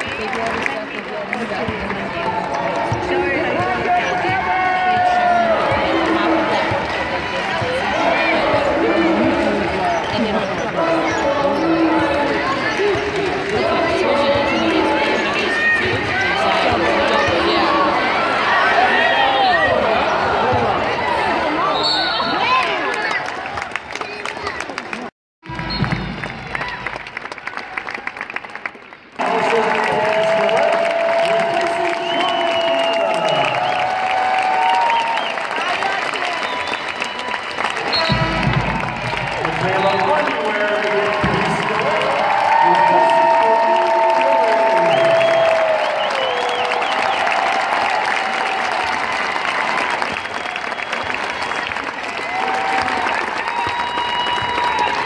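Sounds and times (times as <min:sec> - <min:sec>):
crowd talking in arena: 0:00.0 - 0:55.0.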